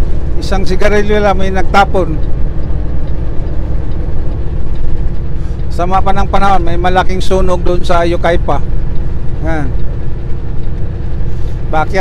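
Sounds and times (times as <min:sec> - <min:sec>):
truck diesel engine rumbling: 0:00.0 - 0:12.0.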